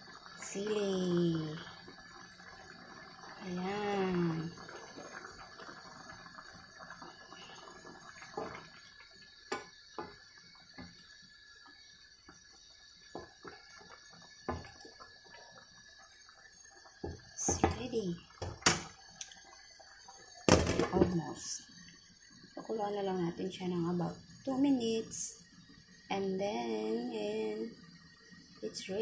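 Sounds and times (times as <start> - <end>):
broth simmering with pops: 0.0 - 29.0
faint steady hiss: 0.0 - 29.0.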